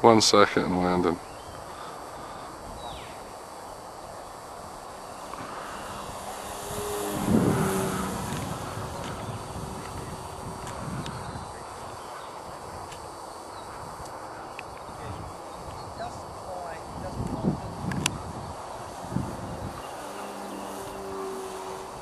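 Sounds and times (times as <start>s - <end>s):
model airplane motor and propeller: 2.5s - 13.2s, 13.8s - 22.0s.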